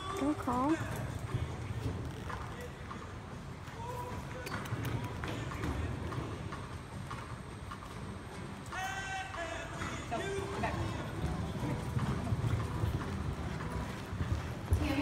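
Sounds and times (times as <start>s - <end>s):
horse hoofbeats on dirt: 0.0s - 15.0s.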